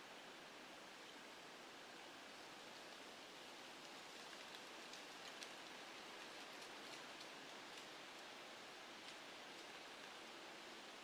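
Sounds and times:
faint outdoor hiss: 0:00.0 - 0:11.0
faint soft ticks: 0:03.8 - 0:08.4, 0:09.0 - 0:10.2.

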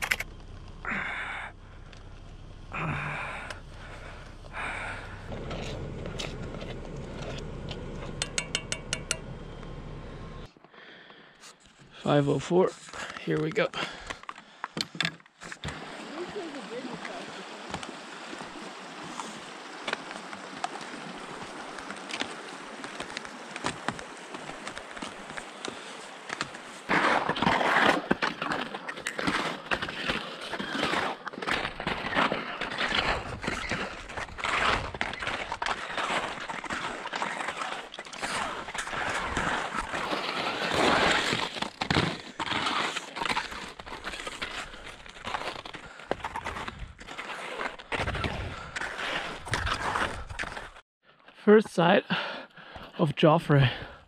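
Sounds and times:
footsteps crunching on snow: 0:03.3 - 0:08.2, 0:15.8 - 0:50.8.

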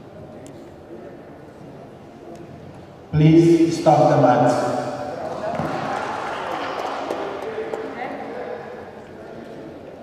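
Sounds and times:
reverberant hall hum: 0:00.0 - 0:10.0.

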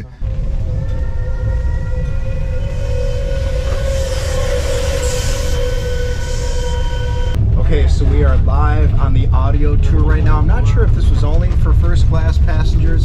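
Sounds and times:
steam train rumbling: 0:00.0 - 0:13.0
multi-note train whistle: 0:00.2 - 0:07.4.

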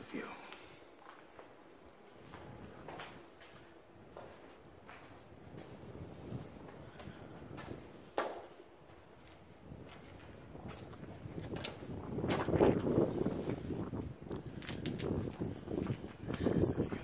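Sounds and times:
footsteps scuffing on concrete: 0:00.4 - 0:12.6.

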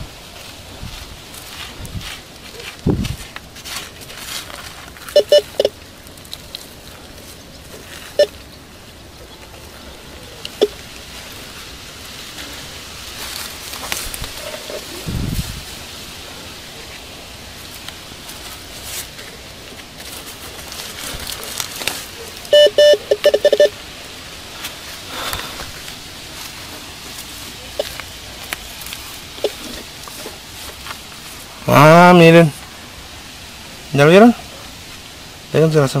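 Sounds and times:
coil scraping in soil and grass: 0:00.0 - 0:36.0
metal detector beeps: 0:05.1 - 0:05.8, 0:08.2 - 0:08.4, 0:10.6 - 0:10.8, 0:22.5 - 0:23.8, 0:29.4 - 0:29.7.

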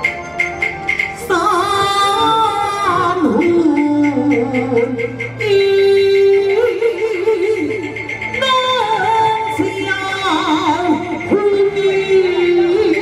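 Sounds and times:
opera singing: 0:01.2 - 0:13.0.

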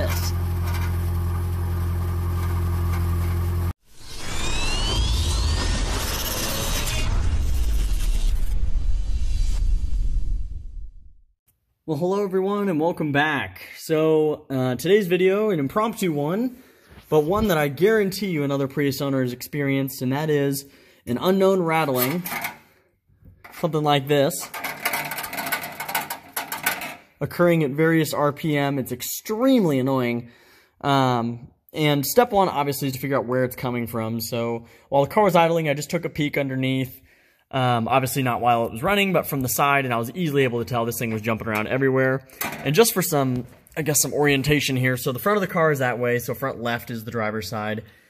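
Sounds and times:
exhaust heat shield buzzing: 0:00.0 - 0:07.3
rising electric zaps: 0:03.8 - 0:10.6
whooshes: 0:03.8 - 0:11.3
low rumbles: 0:03.9 - 0:11.3.

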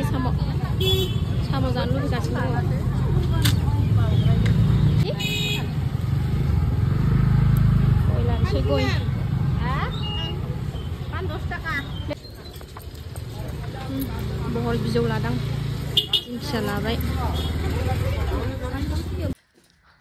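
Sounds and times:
people talking: 0:00.0 - 0:05.6, 0:08.0 - 0:12.2, 0:13.3 - 0:19.4
low rumble of road traffic: 0:00.0 - 0:20.0.

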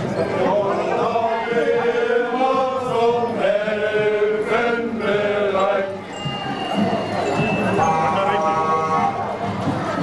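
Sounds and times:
marching footsteps on pavement: 0:00.0 - 0:10.0
men singing together: 0:00.4 - 0:06.0.

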